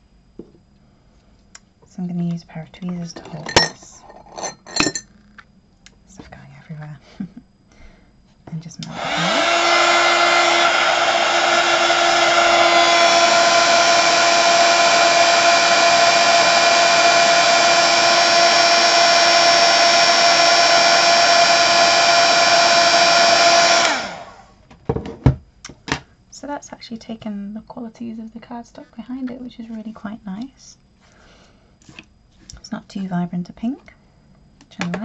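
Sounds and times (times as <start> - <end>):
heat gun fan whine: 2.5 - 6.0, 7.0 - 26.2.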